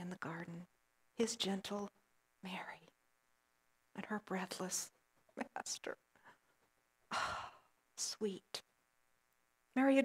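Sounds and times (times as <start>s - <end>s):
woman sighing: 7.1s - 7.7s.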